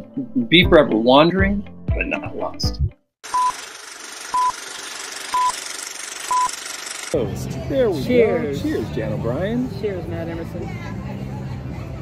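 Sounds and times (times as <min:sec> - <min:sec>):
short high beeps: 0:03.3 - 0:03.6, 0:04.3 - 0:04.6, 0:05.3 - 0:05.6, 0:06.3 - 0:06.6.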